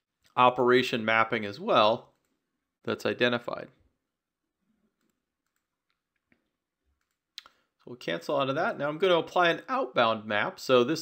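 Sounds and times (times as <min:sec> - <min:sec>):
computer mouse clicks: 0:02.1 - 0:02.4, 0:05.0 - 0:07.6.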